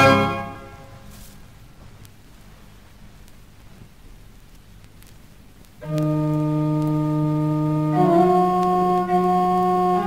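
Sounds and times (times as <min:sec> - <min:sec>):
pipe organ chord: 0:00.0 - 0:01.0.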